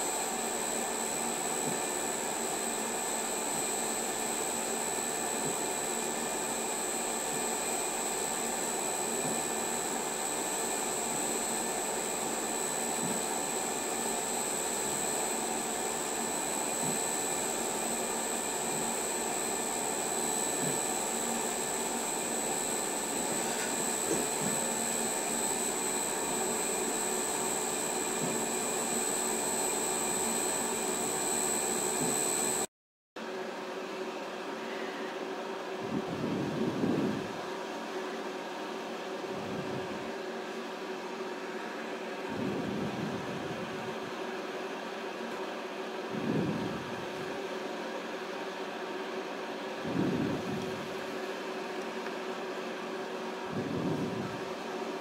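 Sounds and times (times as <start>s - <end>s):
machine motor hum with whine: 0.0s - 32.7s.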